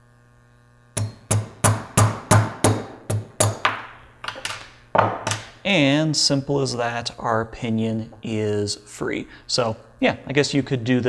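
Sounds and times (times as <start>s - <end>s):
hammer tapping metal: 1.0s - 4.5s.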